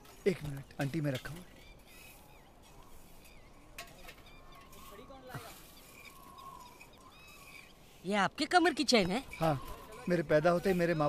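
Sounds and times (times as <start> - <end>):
small birds chirping: 0.0 - 11.0
short rising bird calls: 1.4 - 8.0.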